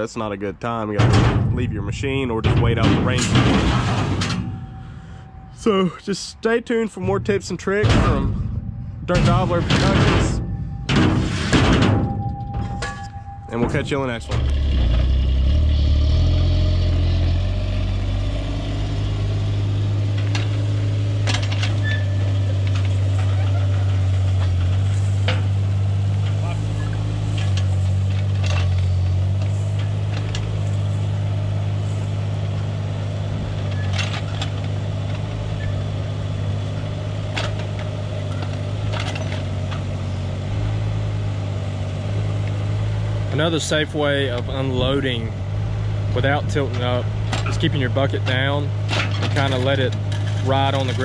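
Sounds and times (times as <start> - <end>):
excavator diesel engine running: 0.6 - 51.0
metallic knocks and clanks: 0.9 - 5.8, 6.9 - 16.6, 46.2 - 51.0.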